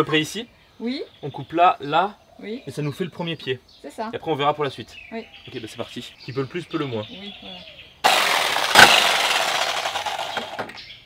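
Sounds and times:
jigsaw cutting wood: 8.0 - 10.8.

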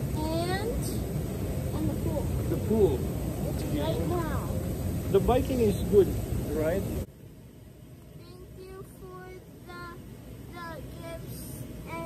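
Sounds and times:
hot tub jets bubbling: 0.0 - 12.0
child singing softly: 8.2 - 12.0.

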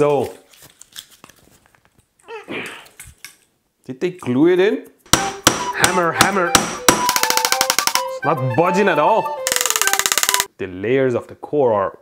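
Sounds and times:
hands clicking and scraping: 6.8 - 8.1.

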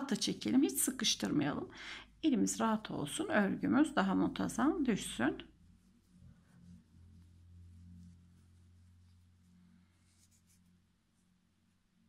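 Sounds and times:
faint low hum: 0.0 - 12.0
crochet hook rustling yarn: 2.6 - 12.0.

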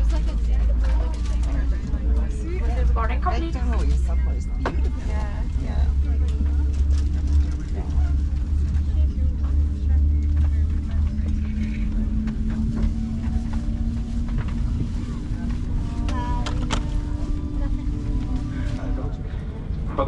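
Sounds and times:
murmur of passengers: 0.0 - 20.0
cabin air system hum: 3.0 - 20.0.

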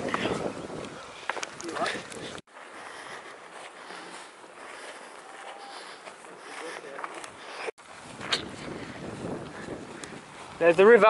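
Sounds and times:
footsteps on grassy path: 0.0 - 11.0
faint voices: 4.6 - 7.7.

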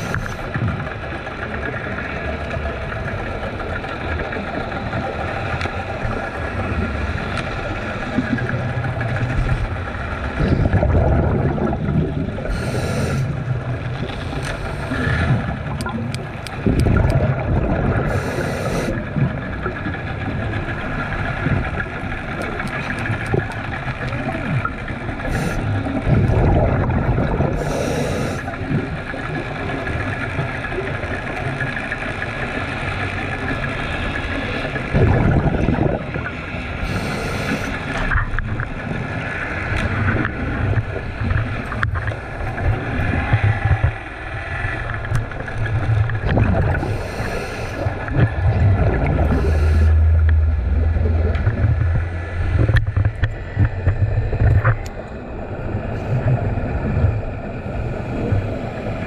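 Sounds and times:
scuba bubbles bursting: 0.0 - 32.4, 34.6 - 57.4
muffled underwater rumble: 0.0 - 59.0.

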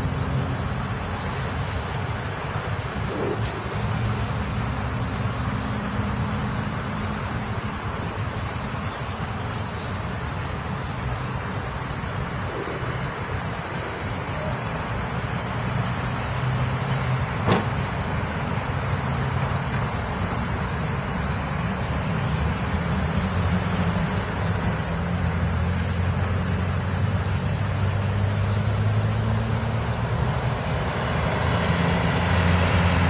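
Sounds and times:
road traffic noise: 0.0 - 33.0.

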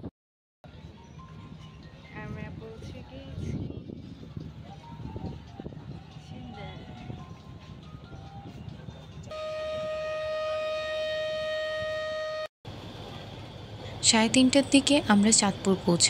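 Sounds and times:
boat engine rumble: 0.7 - 16.0
boat horn blast: 9.3 - 12.5.

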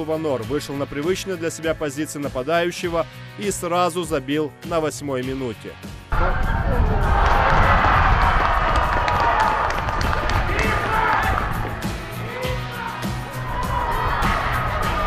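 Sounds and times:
background music with steady beat: 0.0 - 15.0.

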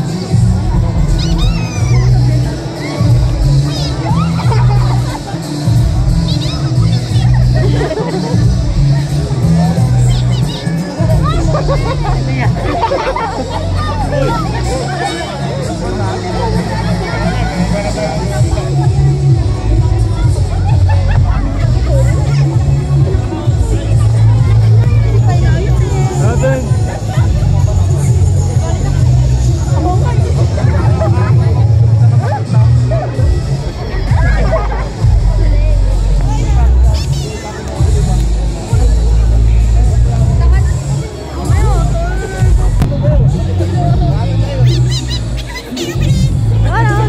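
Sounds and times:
crowd chattering: 0.0 - 47.0
music with low bass line: 0.0 - 47.0.

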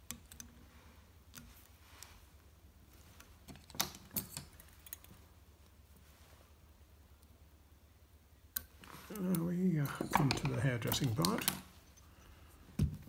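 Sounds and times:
small tools clicking and tapping: 8.5 - 12.1.

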